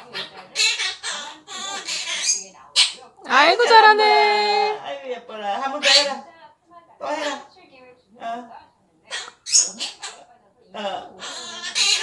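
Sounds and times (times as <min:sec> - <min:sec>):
parrot bright calls: 0:00.0 - 0:03.0, 0:05.8 - 0:06.2, 0:09.1 - 0:10.2, 0:11.2 - 0:12.0
parrot speech-like utterance: 0:00.0 - 0:06.3, 0:07.0 - 0:07.5, 0:09.1 - 0:12.0.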